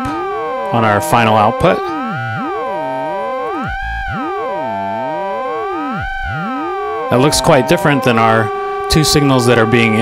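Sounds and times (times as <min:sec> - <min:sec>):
steady synthesizer tone: 0:00.0 - 0:10.0.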